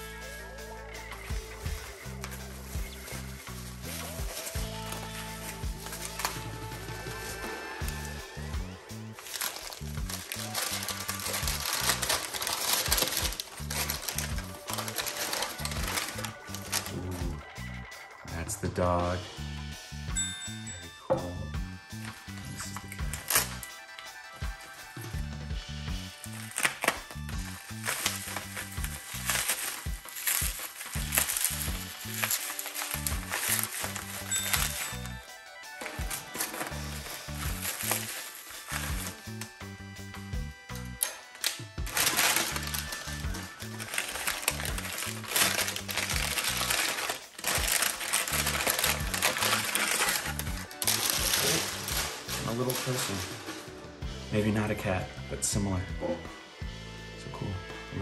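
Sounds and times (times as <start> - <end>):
bubble wrap and paper rustling: 0.0 - 17.5, 21.9 - 54.8
background music with bass line: 0.0 - 58.0.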